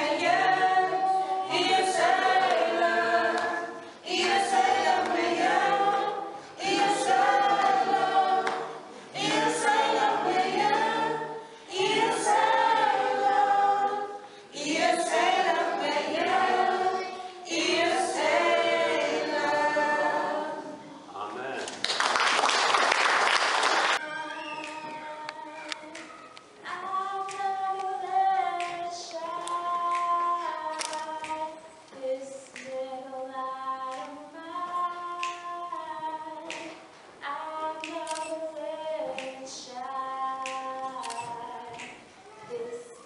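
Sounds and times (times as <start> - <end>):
choir singing a cappella: 0.0 - 21.0, 26.6 - 43.0.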